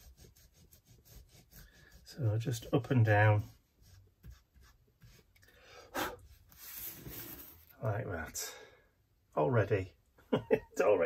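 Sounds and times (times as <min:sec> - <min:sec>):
dabbing ink tool on paper: 0:00.0 - 0:05.3.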